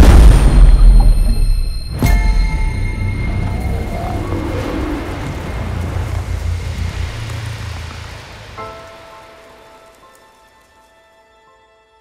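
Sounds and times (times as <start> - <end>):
explosion rumble and crackling: 0.0 - 1.7, 3.3 - 10.4
music: 0.0 - 12.0.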